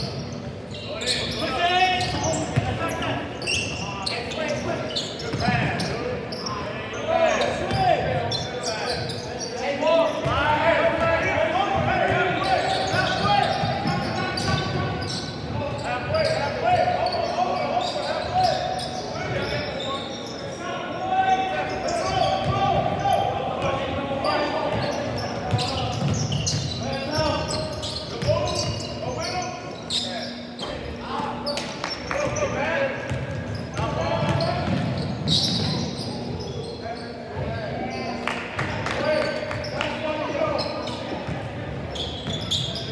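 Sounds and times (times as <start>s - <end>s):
indistinct shouts and chatter: 0.0s - 42.9s
basketball bouncing on court: 24.7s - 27.4s, 33.1s - 35.9s.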